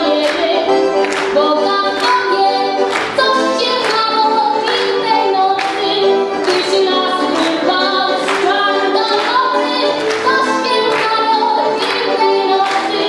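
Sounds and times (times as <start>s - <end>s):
piano accordion: 0.0s - 13.0s.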